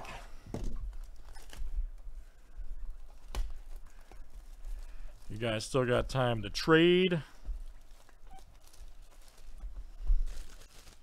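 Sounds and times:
plastic wrap rustling: 0.0 - 11.0.

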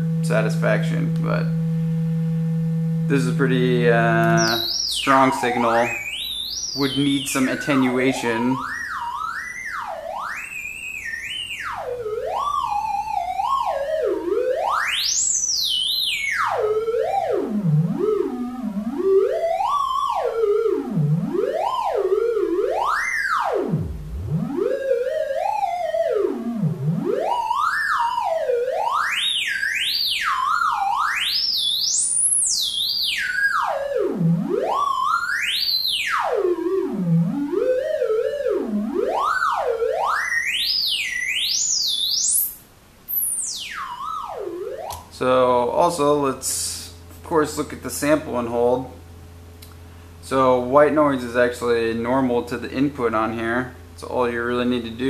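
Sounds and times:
synthesizer tone gliding in pitch: 0.0 - 42.5, 43.1 - 45.0.

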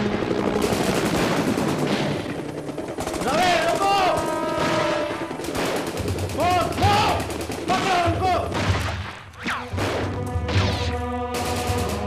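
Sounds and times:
rapid automatic gunfire: 0.0 - 9.0, 11.4 - 12.0.

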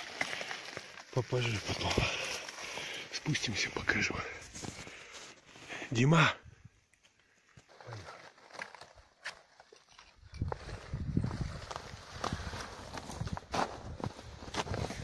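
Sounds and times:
footsteps crunching on snow: 10.4 - 15.0.

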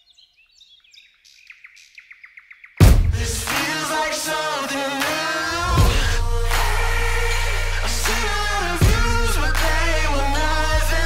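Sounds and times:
songbird chirping: 0.0 - 3.3
music with heavy bass hit: 2.8 - 3.7, 5.5 - 11.0.

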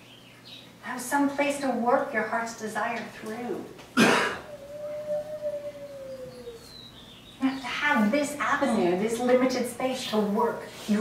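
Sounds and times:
wolf howling: 4.4 - 6.9.

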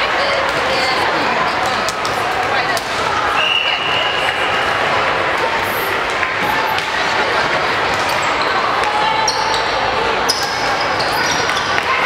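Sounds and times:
many voices chattering: 0.0 - 12.0.

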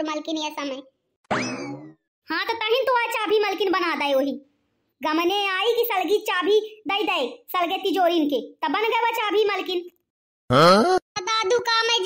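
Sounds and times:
cartoon boing twang: 1.3 - 2.0.

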